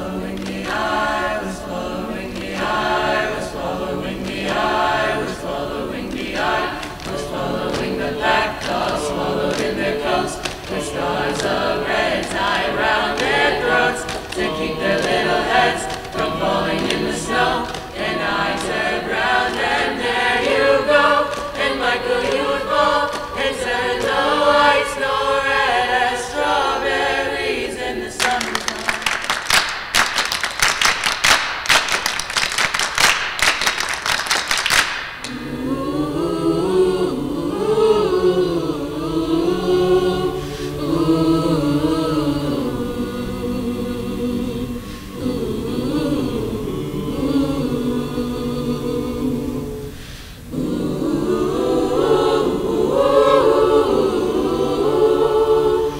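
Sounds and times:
choir singing in harmony: 0.0s - 29.4s, 34.9s - 55.9s
crowd applauding: 28.2s - 35.4s.

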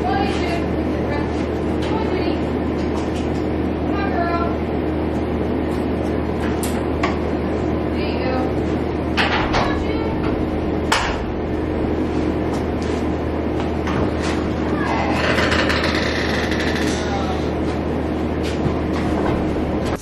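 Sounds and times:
low mechanical hum: 0.0s - 20.0s.

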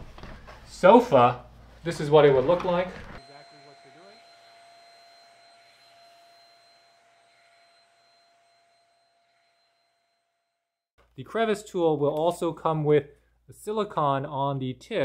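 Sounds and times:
hand vacuum whine: 2.0s - 10.6s.

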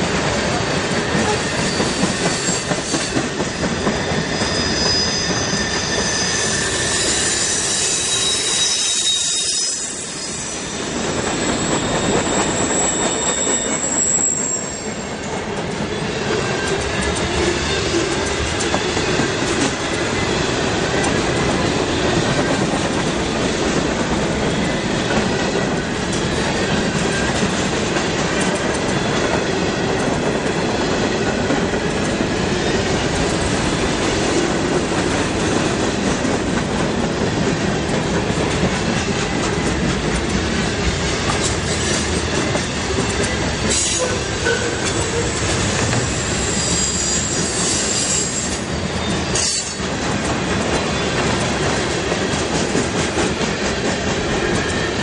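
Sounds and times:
steel wheels rolling on rail: 0.0s - 55.0s
high wheel squeal: 1.3s - 3.2s, 3.8s - 15.1s, 46.1s - 49.8s.

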